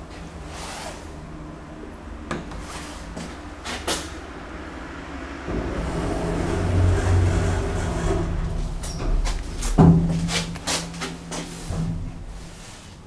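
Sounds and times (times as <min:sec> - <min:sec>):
lift rumble and hum: 0:00.0 - 0:13.0.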